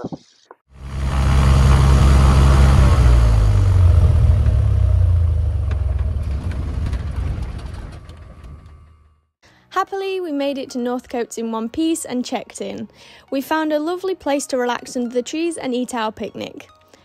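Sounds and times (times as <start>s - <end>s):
airplane piston engine drone: 0.7s - 8.7s.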